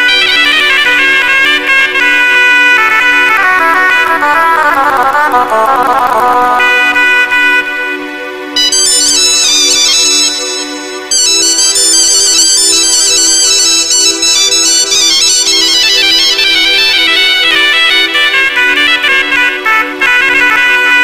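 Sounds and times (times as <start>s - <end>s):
keyboard melody in quick runs: 0.0s - 21.0s.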